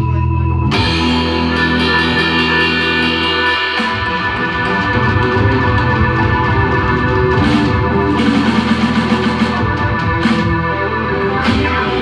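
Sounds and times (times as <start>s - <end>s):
drums: 0.0s - 12.0s
electric guitar: 0.0s - 12.0s
keyboard: 0.0s - 12.0s.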